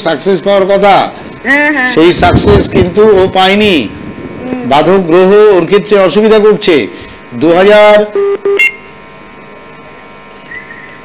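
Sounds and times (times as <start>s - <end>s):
faint telephone line hum: 0.0s - 11.0s
telephone line beeps: 8.1s - 8.9s.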